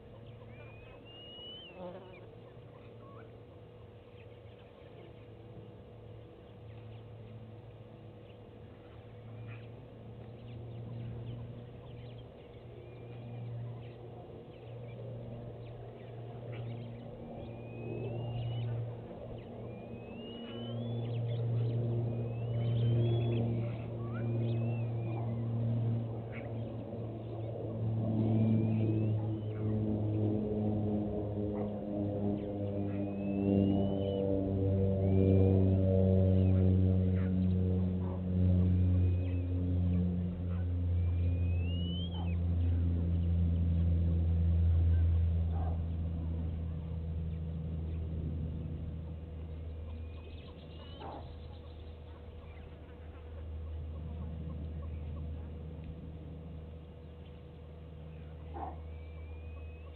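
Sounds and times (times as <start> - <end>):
birds chirping: 0.0 - 59.9
vehicle engine running: 2.4 - 59.9.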